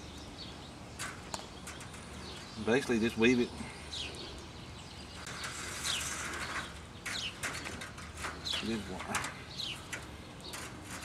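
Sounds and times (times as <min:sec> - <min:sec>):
small birds chirping: 0:00.0 - 0:11.0
wire rustling and clicking: 0:01.0 - 0:03.0, 0:05.2 - 0:11.0.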